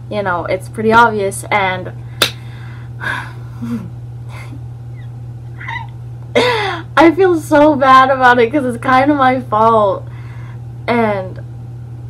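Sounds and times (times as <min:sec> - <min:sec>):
steady low hum: 0:00.0 - 0:12.0
woman breathing softly: 0:02.4 - 0:03.6, 0:10.1 - 0:10.6
woman stifled breathy laugh: 0:03.0 - 0:04.6.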